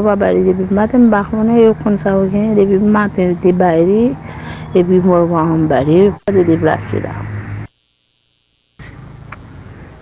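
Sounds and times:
person speaking: 0.0s - 7.3s
electrical hum with hiss: 0.0s - 10.0s.

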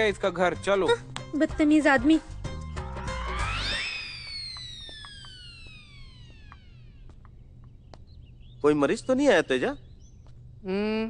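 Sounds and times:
downward sliding whistle tone: 2.8s - 7.0s.

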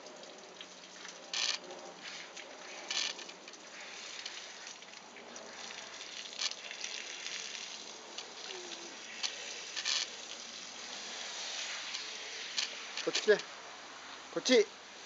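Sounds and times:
hose spraying water on dog: 0.0s - 15.0s.

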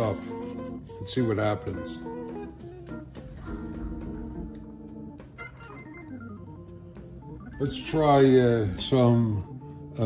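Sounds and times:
organ-like keyboard music: 0.0s - 10.0s.

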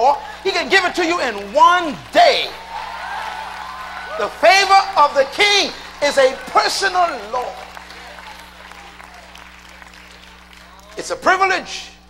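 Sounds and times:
crowd clapping: 0.0s - 11.9s.

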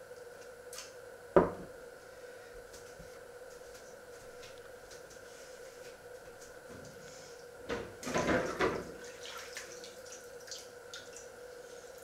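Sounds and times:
glass knocking on wooden table: 1.4s - 1.7s.

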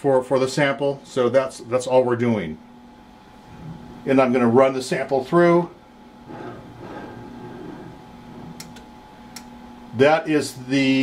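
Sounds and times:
quiet steady hum: 0.0s - 11.0s
wire rubbing through rollers: 6.2s - 8.8s.

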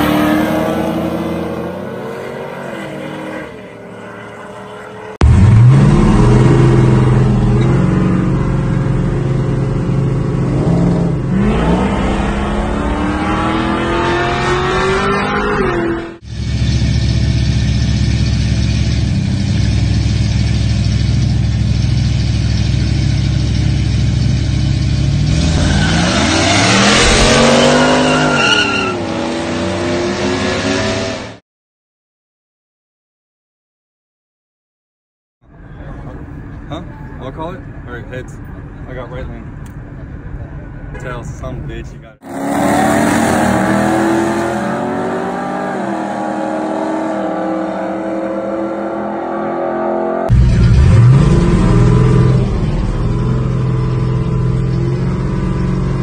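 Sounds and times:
engines accelerating hard: 0.0s - 31.4s, 42.2s - 56.0s.

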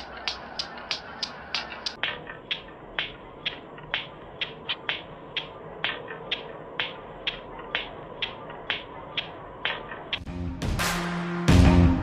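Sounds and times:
sharp ticks: 0.0s - 10.3s.

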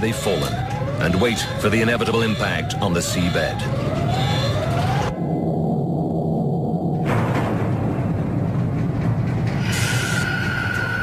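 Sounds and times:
dark tense soundtrack music: 0.0s - 11.0s
heavy low rumble: 3.7s - 10.8s.

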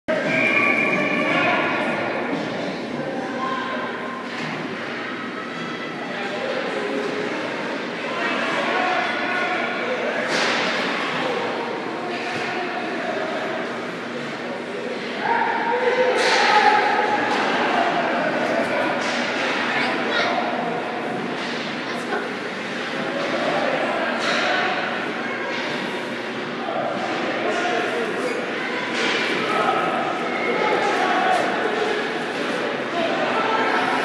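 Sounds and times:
spectators talking and shouting: 0.1s - 34.0s.

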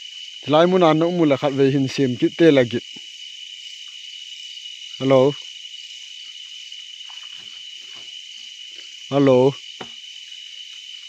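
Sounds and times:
night insects chorus: 0.0s - 11.0s.

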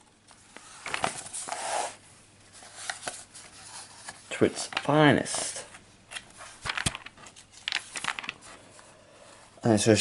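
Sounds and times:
paper pages flipping: 0.4s - 8.7s.

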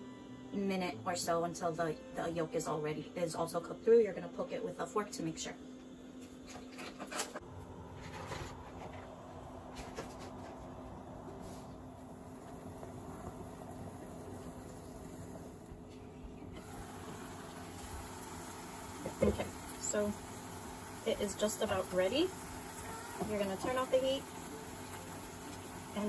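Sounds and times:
steady hum: 7.4s - 26.0s.

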